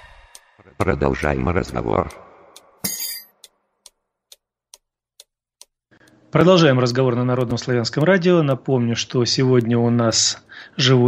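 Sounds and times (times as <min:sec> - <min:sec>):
faint ticking: 0:00.0 - 0:02.8, 0:03.4 - 0:11.0.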